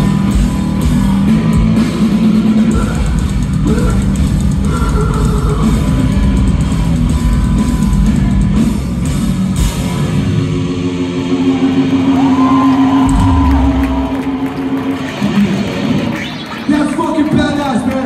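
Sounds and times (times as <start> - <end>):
distorted electric guitars: 0.0 - 18.0
drum kit: 0.0 - 18.0.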